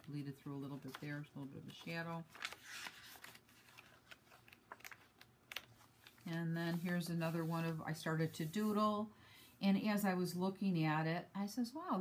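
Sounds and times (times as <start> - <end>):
paper page turning: 0.0 - 7.8.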